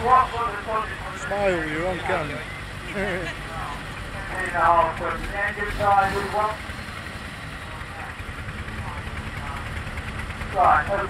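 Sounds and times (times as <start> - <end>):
man talking: 0.0 - 6.6
engine idling: 0.0 - 11.0.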